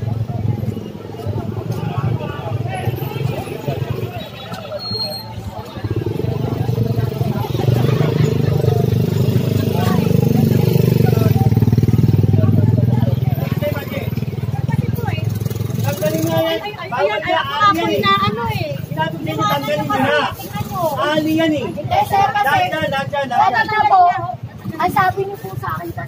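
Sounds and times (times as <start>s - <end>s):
motorcycle engine rumbling: 0.0s - 26.0s
people talking: 0.0s - 26.0s.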